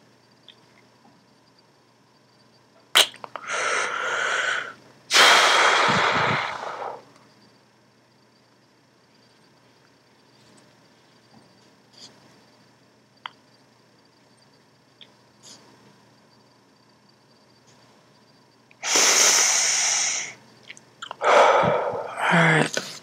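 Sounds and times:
person breathing loudly: 3.4s - 7.1s, 18.8s - 20.4s, 21.2s - 22.7s.

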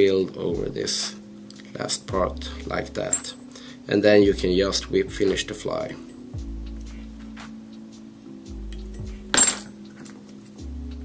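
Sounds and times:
soft background music: 0.0s - 11.0s.

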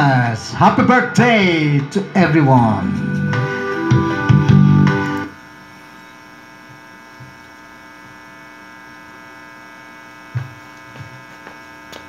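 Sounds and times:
guitar amplifier mains hum: 0.0s - 12.0s.

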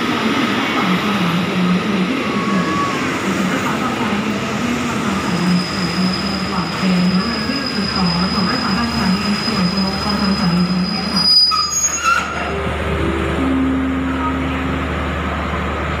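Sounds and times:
train wheels and brakes squealing: 5.1s - 12.6s
train tones stepping down in pitch: 8.7s - 15.9s.

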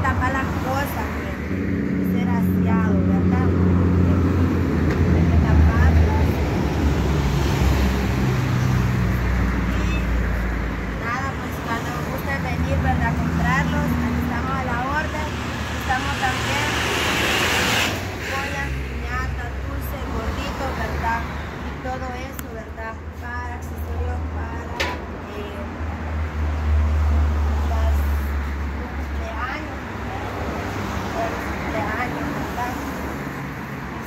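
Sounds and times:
street traffic: 0.0s - 34.0s.

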